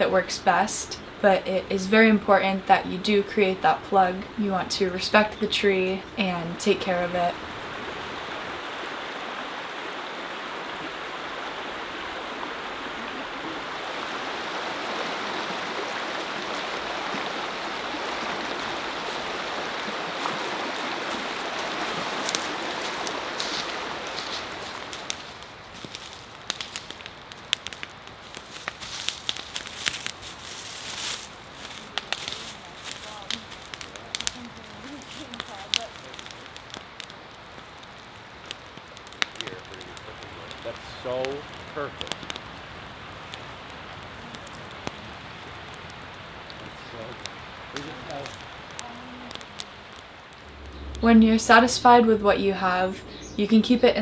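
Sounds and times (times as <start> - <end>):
bonfire branches crackling: 0.0 - 54.0
stream rushing over rocks: 6.8 - 50.8.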